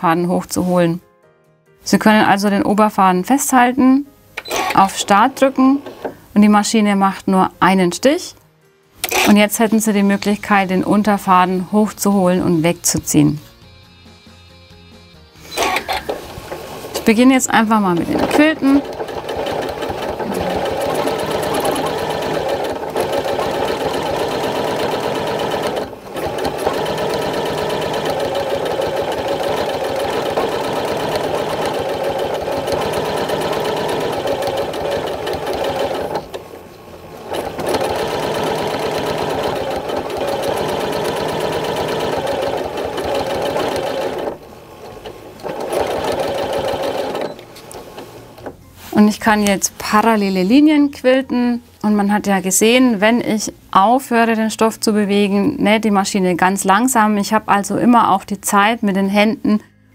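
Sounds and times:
sewing machine stitching fast: 0:04.4 - 0:06.1, 0:09.0 - 0:09.5, 0:15.5 - 0:36.5, 0:37.2 - 0:48.1.

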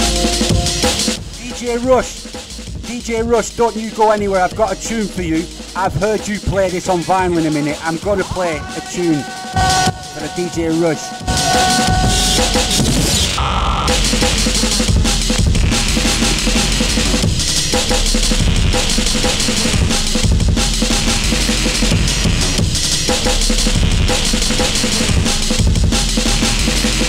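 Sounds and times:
drum and bass dance music: 0:00.0 - 0:27.0.

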